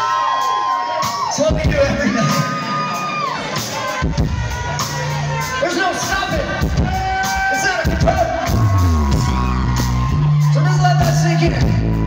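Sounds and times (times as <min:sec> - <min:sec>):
live rock band playing loud: 0:00.0 - 0:12.0.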